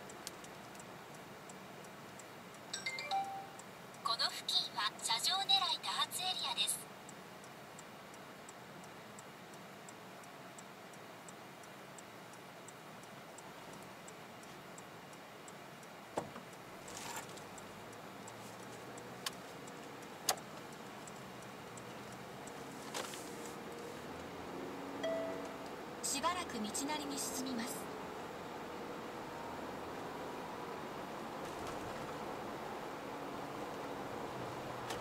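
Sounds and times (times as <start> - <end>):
turn signal ticking: 7.0 - 28.3.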